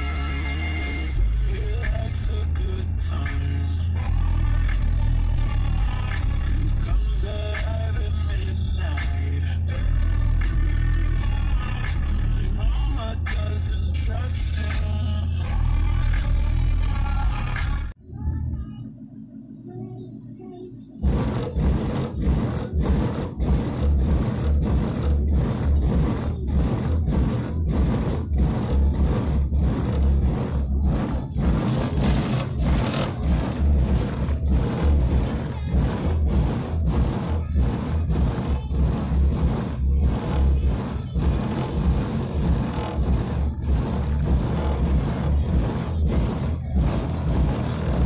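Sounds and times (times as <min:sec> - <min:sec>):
bass-heavy music with pounding beat: 0:21.0 - 0:48.0.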